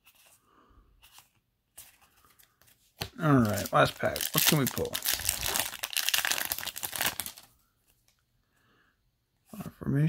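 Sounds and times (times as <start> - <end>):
foil wrapper crinkling: 3.2 - 7.5.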